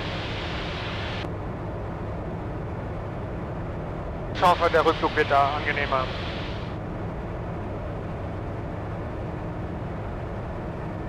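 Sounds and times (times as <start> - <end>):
light aircraft engine drone: 0.0 - 11.0.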